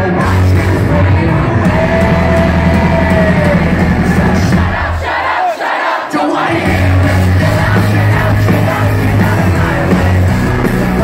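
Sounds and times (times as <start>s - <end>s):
crowd singing and shouting: 0.0s - 11.0s
live pop-punk band: 0.0s - 11.0s.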